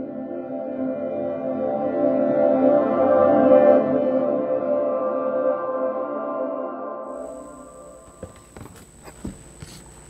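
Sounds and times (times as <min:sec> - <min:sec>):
steady high whine: 0:07.1 - 0:10.0.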